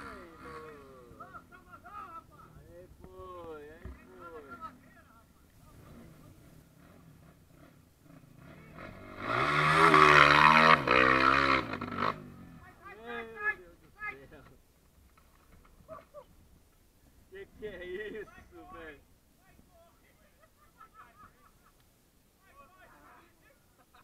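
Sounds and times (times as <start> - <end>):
dirt bike engine revving: 0.0 - 1.2, 5.8 - 12.6.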